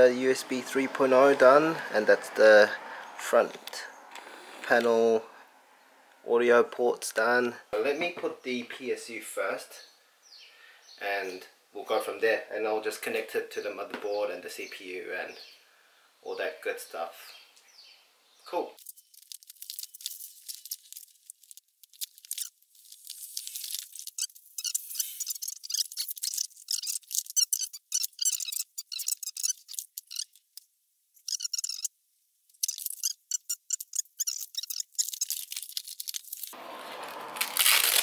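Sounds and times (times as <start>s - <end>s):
plastic packaging crinkling: 18.8s - 27.4s, 33.9s - 38.0s.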